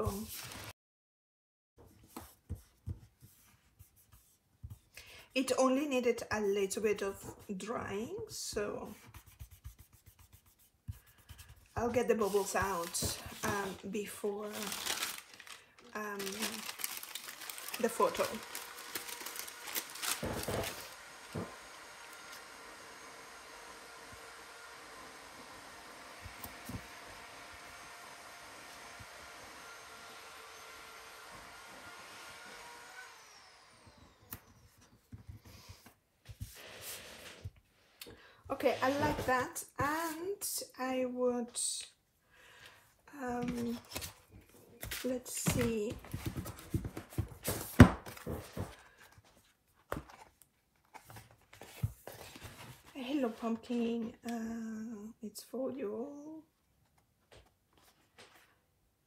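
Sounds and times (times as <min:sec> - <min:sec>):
paper rustling and tapping: 0:16.2 - 0:21.5, 0:44.8 - 0:48.9
power tool motor humming: 0:17.2 - 0:34.4.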